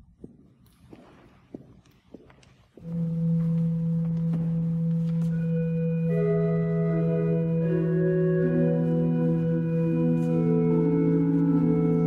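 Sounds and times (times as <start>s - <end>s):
church organ holding low note: 2.8s - 12.0s.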